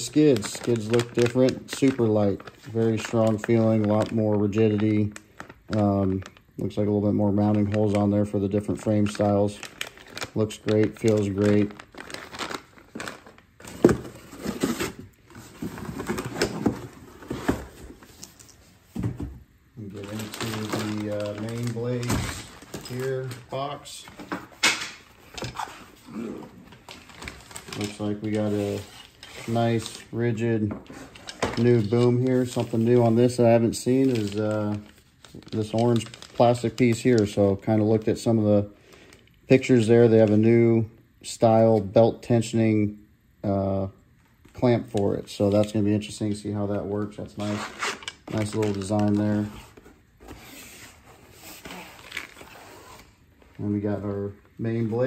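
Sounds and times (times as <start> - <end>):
cardboard and plastic rustling: 0.0 - 40.4, 44.4 - 55.0.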